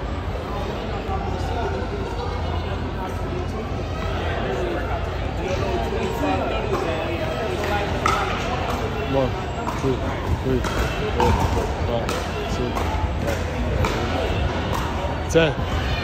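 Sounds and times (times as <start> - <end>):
background voices talking: 0.0 - 16.0.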